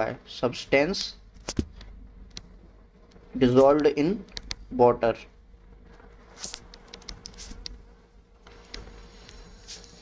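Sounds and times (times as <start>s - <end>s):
faint steady hum: 0.0s - 10.0s
stylus scratching on tablet screen: 6.2s - 7.8s, 8.5s - 10.0s.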